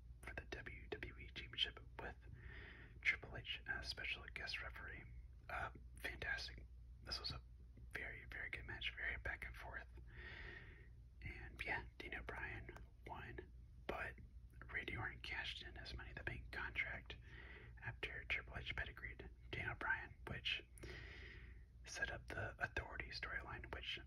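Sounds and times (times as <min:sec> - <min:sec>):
faint low hum: 0:00.0 - 0:24.0
person whispering: 0:00.2 - 0:02.3, 0:03.0 - 0:10.1, 0:11.2 - 0:20.9, 0:21.9 - 0:24.0.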